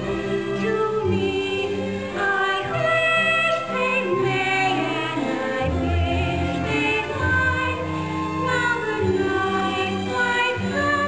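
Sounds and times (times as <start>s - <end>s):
stage musical singing: 0.0s - 11.0s.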